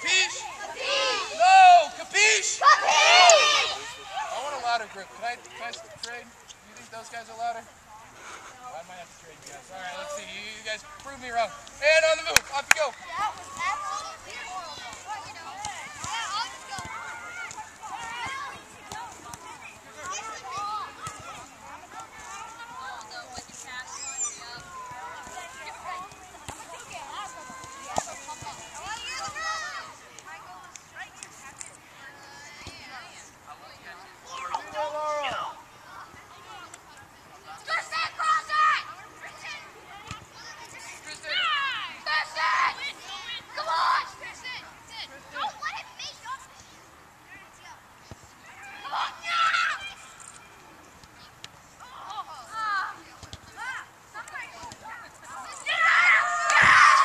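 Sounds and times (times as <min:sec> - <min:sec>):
children calling and chattering: 0:00.0 - 0:06.6, 0:12.4 - 0:57.0
soccer balls kicked on grass: 0:11.0 - 0:31.2.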